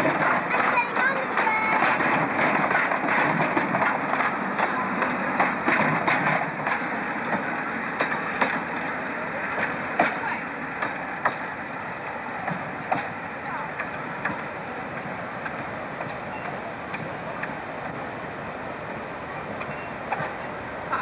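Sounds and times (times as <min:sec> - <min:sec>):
train carriages rolling past: 0:00.0 - 0:21.0
wheels clicking over rail joints: 0:00.0 - 0:21.0.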